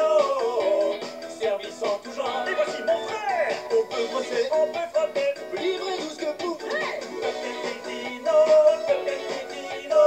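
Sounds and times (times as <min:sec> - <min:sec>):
cartoon theme music from television: 0:00.0 - 0:10.0.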